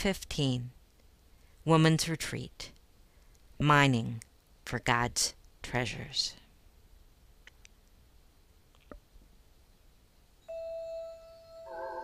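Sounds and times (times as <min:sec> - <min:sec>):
chime-like electronic tone: 0:10.4 - 0:12.0.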